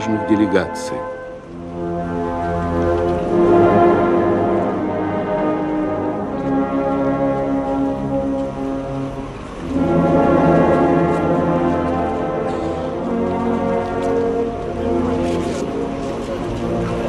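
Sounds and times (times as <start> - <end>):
mournful brass band music: 0.0 - 17.0.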